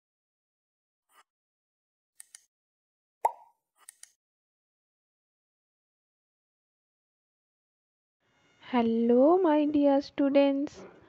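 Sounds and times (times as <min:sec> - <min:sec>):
pop sound effect: 0:03.2 - 0:03.5
mouse clicks: 0:03.3 - 0:04.2.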